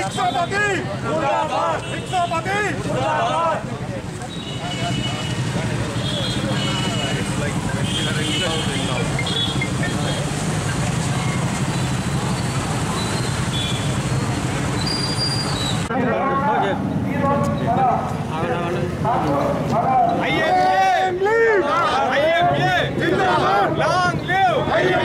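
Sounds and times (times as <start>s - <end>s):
motorcycle engines running: 0.0s - 15.9s
crowd voices: 0.0s - 25.0s.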